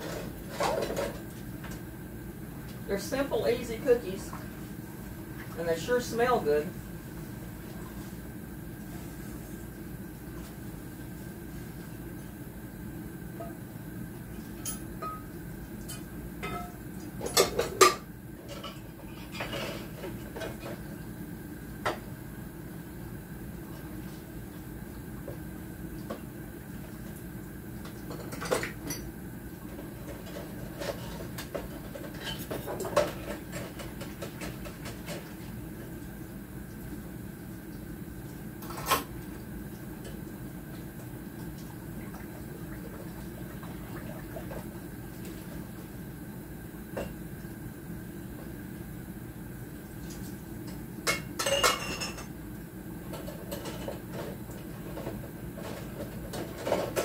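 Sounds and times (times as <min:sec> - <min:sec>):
steady low hum: 0:00.0 - 0:57.0
dishes and cutlery clinking: 0:15.9 - 0:20.6, 0:51.1 - 0:52.3.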